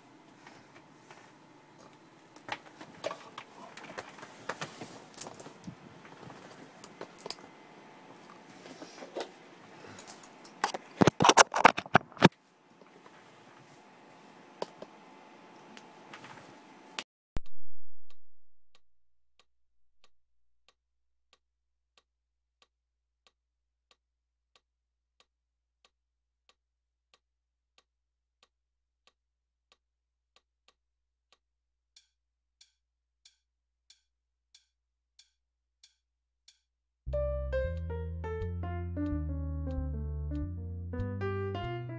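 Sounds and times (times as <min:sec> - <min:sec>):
metronome clicking: 0:32.0 - 0:41.8.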